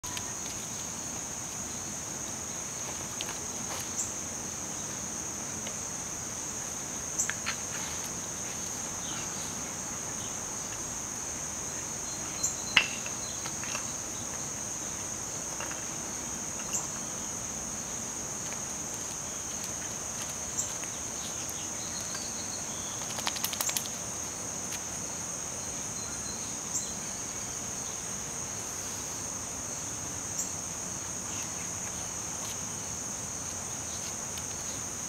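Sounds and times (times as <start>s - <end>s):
insect chorus droning: 0.0s - 35.0s.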